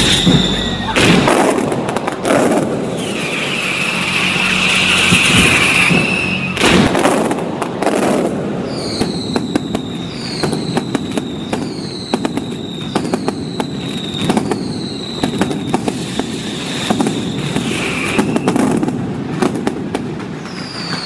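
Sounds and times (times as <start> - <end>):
loud explosive boom: 0.0 - 9.6
firecrackers cracking: 0.0 - 21.0
whistling fireworks: 0.0 - 21.0.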